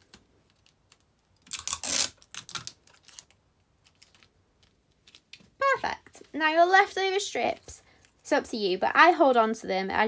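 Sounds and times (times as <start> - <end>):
sticky tape torn from dispenser: 1.5 - 3.3.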